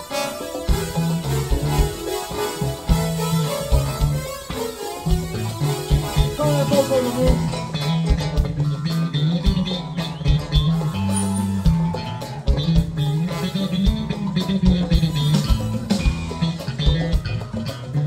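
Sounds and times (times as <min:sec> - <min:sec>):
drum kit beat: 0:00.0 - 0:18.0
electric bass line: 0:00.0 - 0:18.0
funk band playing: 0:00.0 - 0:18.0.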